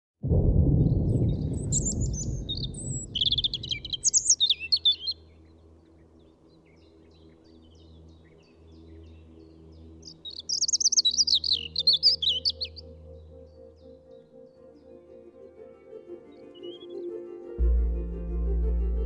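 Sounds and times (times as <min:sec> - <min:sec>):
faint low drone: 0:00.2 - 0:10.0, 0:12.7 - 0:15.9, 0:17.6 - 0:19.0
songbird singing: 0:01.0 - 0:15.3, 0:16.3 - 0:17.7.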